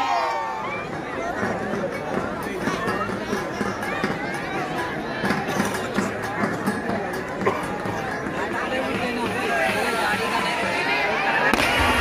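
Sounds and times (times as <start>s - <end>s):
crowd voices: 0.0s - 12.0s
firecrackers crackling: 11.4s - 12.0s.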